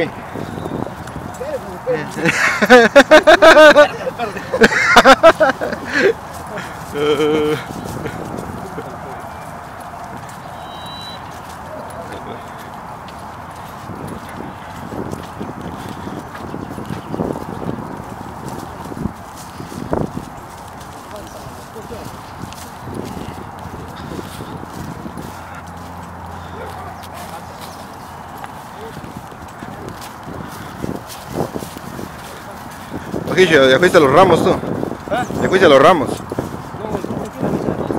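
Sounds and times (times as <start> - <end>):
footsteps on gravel path: 0.0 - 37.9
people talking: 1.3 - 9.3, 11.7 - 12.6, 21.0 - 22.2, 32.2 - 36.2, 36.8 - 37.9.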